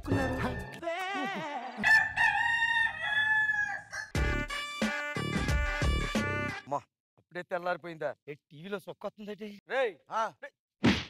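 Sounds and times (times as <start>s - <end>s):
rooster crowing: 1.7s - 4.2s.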